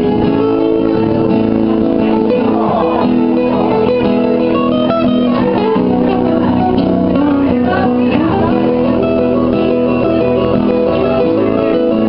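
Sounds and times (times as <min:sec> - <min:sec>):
acoustic guitars playing chords: 0:00.0 - 0:12.0.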